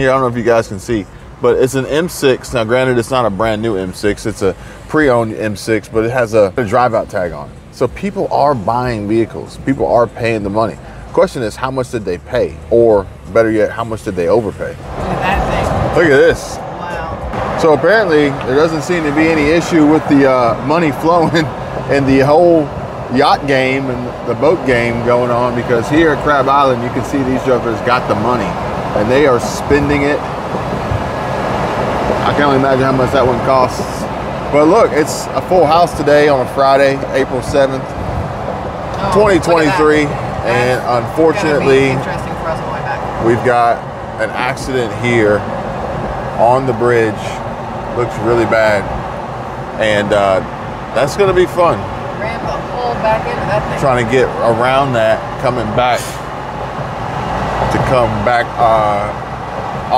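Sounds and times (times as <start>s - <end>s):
man speaking: 0.0s - 14.8s, 15.9s - 16.7s, 17.5s - 30.3s, 32.2s - 37.9s, 39.0s - 42.1s, 43.2s - 45.5s, 46.4s - 47.4s, 48.0s - 48.9s, 49.8s - 51.9s, 53.6s - 56.2s, 57.6s - 59.2s
road and tyre noise inside car: 0.0s - 59.9s.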